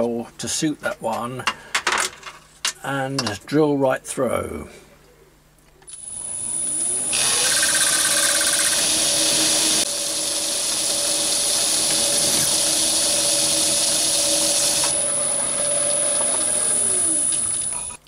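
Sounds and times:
drill cutting metal: 0:05.9 - 0:18.0
lathe spindle whine: 0:05.9 - 0:18.0.

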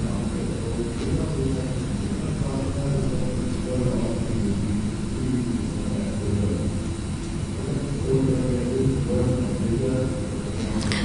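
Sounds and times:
faint wavering murmur: 0:00.0 - 0:11.0
low room rumble: 0:00.0 - 0:11.0.

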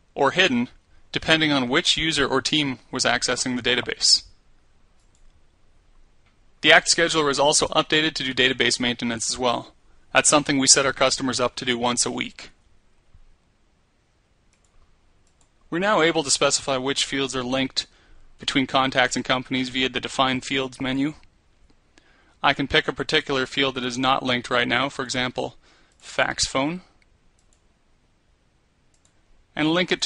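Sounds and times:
faint computer mouse clicks: 0:05.0 - 0:05.4, 0:14.5 - 0:15.6, 0:27.0 - 0:27.7, 0:28.9 - 0:29.2.

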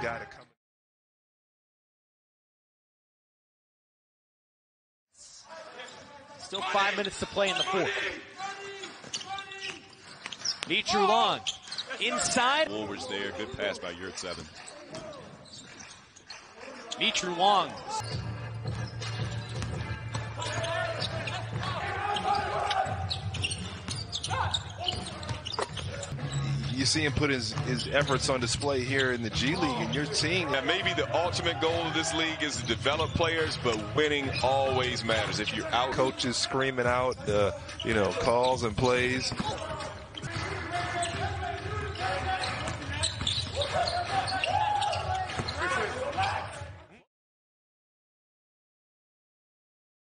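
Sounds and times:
players shouting: 0:06.4 - 0:09.9, 0:19.4 - 0:26.2, 0:29.4 - 0:46.8
people shouting: 0:20.3 - 0:23.2, 0:43.6 - 0:46.6.

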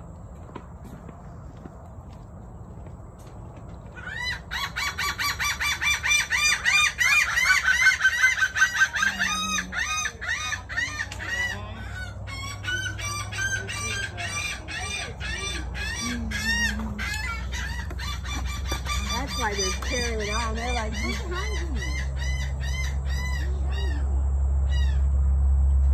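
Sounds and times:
birds calling noisily: 0:02.7 - 0:25.9.

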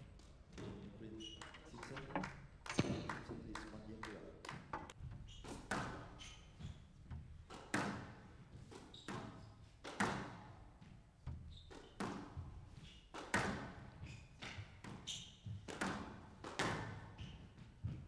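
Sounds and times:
squash ball struck by rackets: 0:04.7 - 0:10.5, 0:13.1 - 0:18.0
sneakers squeaking on court: 0:05.0 - 0:07.1, 0:08.0 - 0:09.7, 0:11.3 - 0:18.0.

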